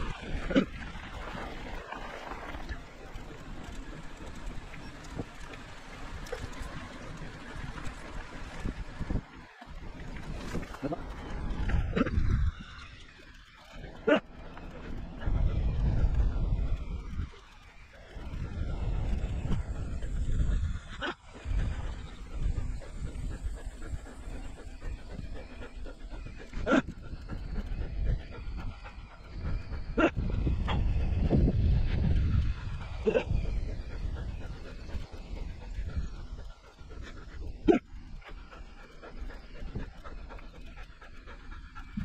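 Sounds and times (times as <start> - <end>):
bicycle on gravel track: 0.0 - 42.0
wind rumbling over microphone: 0.0 - 42.0.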